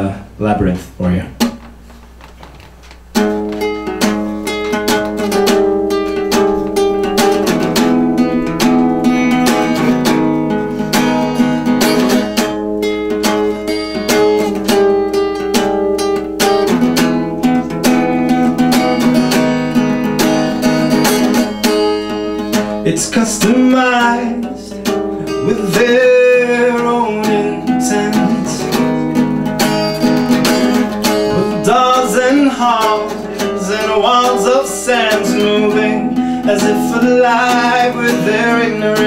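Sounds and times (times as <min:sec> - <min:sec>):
acoustic guitar plucked and strummed: 0:01.4 - 0:39.0.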